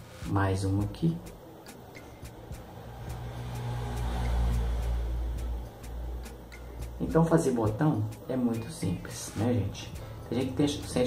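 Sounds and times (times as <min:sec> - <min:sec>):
low rumble: 0:02.3 - 0:06.2.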